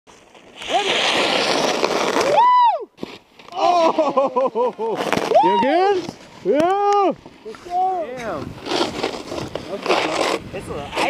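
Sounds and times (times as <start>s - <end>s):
snowboard scraping over icy snow: 0.1s - 6.5s, 7.2s - 11.0s
laughter: 3.8s - 5.0s.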